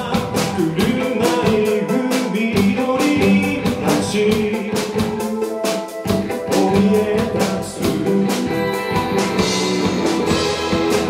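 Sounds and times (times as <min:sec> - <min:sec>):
male voice singing: 0:00.0 - 0:05.6, 0:06.3 - 0:08.8
drum kit beat: 0:00.0 - 0:11.0
electric bass: 0:00.0 - 0:11.0
electric guitar: 0:00.0 - 0:11.0.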